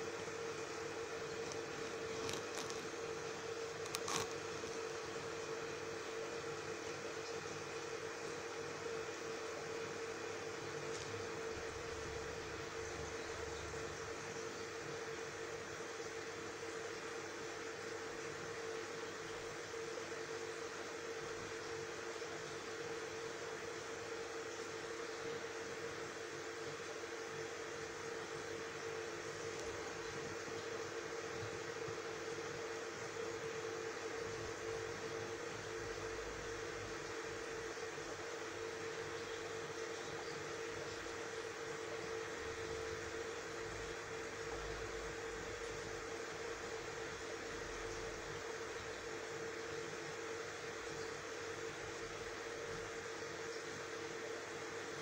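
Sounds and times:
aquarium pump hum: 0.0s - 55.0s.

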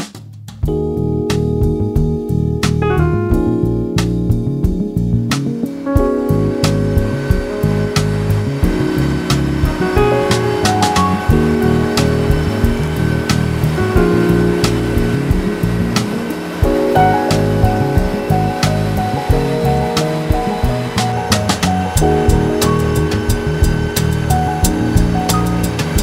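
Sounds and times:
background music with steady beat: 0.0s - 26.0s.

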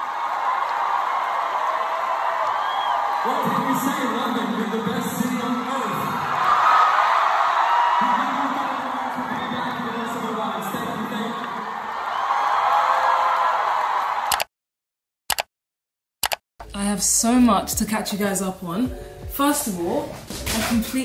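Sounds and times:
audience cheering: 0.0s - 14.4s.

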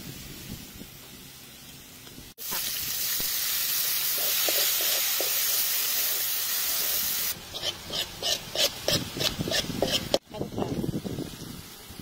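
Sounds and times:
garlic sizzling in hot oil: 0.0s - 12.0s
spatula scraping pan: 4.2s - 6.9s, 7.5s - 10.2s.

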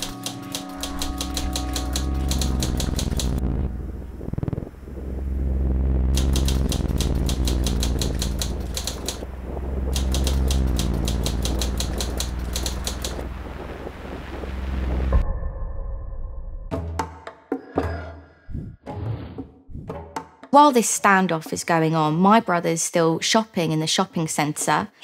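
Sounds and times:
typewriter key clicks: 0.0s - 3.4s, 6.2s - 9.2s
steady low drone: 0.0s - 16.7s.

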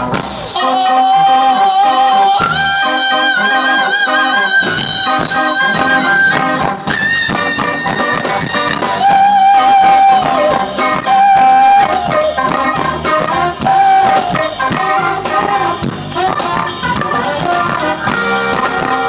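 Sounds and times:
brass horn lead notes: 0.0s - 19.0s
funk band playing: 0.0s - 19.0s.

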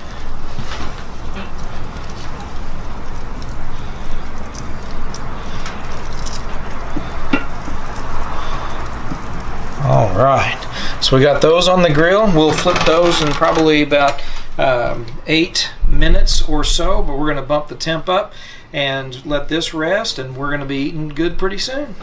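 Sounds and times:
meat sizzling on a grill: 0.0s - 15.0s
steady low rumble: 14.4s - 17.8s.

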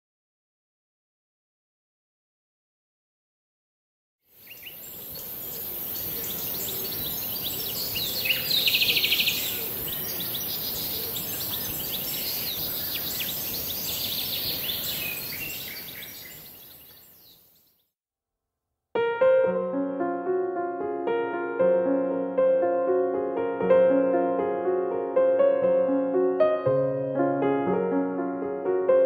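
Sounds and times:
steady high hiss: 4.4s - 16.5s
birds chirping and twittering: 4.4s - 17.9s.

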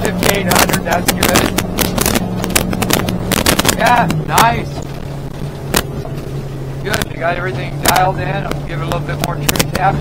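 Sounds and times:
outboard motor droning: 0.0s - 10.0s.

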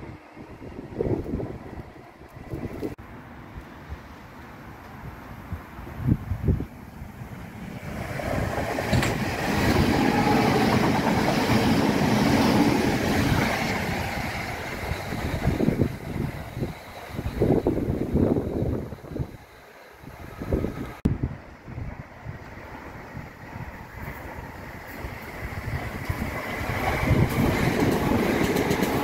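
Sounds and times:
wind buffeting microphone: 0.0s - 3.0s, 4.9s - 29.0s
train rumbling past: 0.0s - 29.0s.

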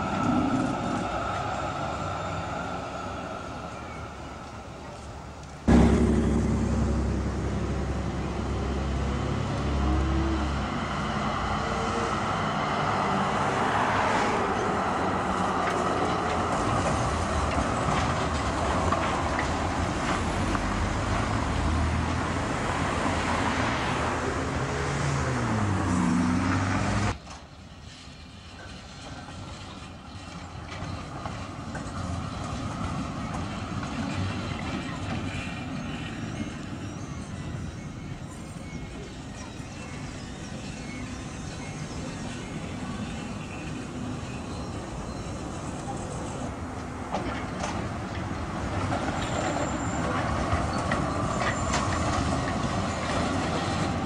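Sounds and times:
cars passing: 0.0s - 27.2s
outdoor background: 0.0s - 54.0s
tram running: 0.0s - 54.0s.

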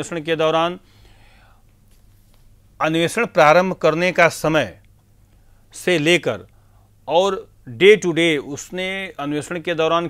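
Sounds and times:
soft breath: 0.8s - 2.4s
man talking: 2.8s - 4.8s, 5.7s - 6.5s, 7.1s - 10.0s.

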